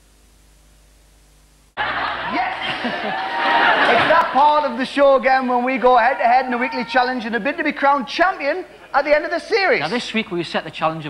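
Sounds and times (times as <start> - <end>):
faint steady hiss: 0.0 - 11.0
studio audience laughter: 1.8 - 4.8
voices: 1.8 - 10.7.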